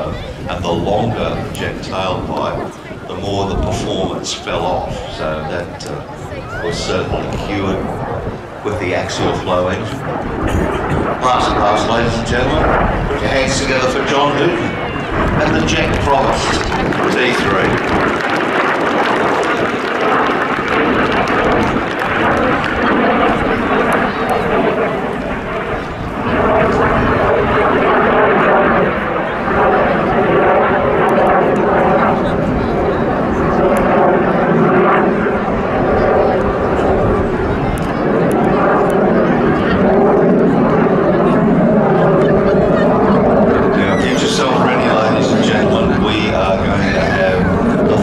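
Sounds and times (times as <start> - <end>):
jet engine roaring: 0.0 - 48.0.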